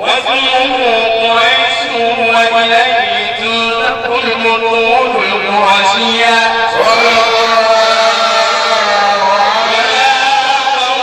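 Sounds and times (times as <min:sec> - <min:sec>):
man chanting through a microphone: 0:00.0 - 0:11.0.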